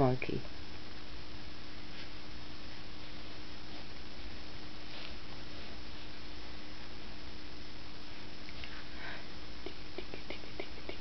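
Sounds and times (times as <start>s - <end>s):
faint low hum: 0.0s - 11.0s
steady hiss: 0.0s - 11.0s.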